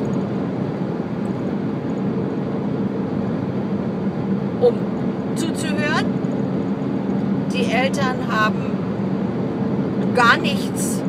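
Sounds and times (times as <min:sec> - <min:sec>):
car cabin road and engine hum: 0:00.0 - 0:11.0.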